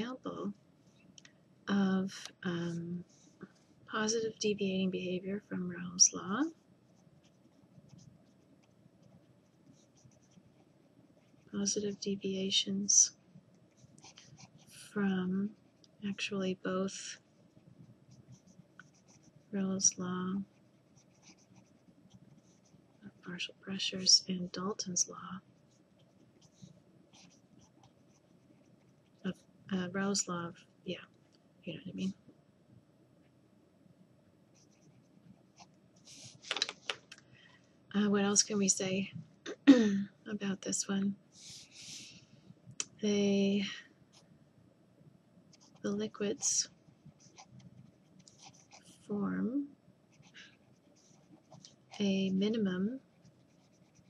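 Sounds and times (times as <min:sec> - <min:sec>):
pen scratching on paper: 0:20.5 - 0:23.2, 0:53.1 - 0:54.0
marker scratching on paper: 0:53.2 - 0:54.0.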